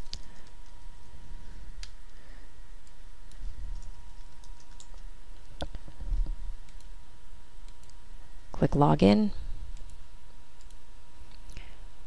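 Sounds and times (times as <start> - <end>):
keyboard typing: 2.8 - 5.7, 7.6 - 8.0.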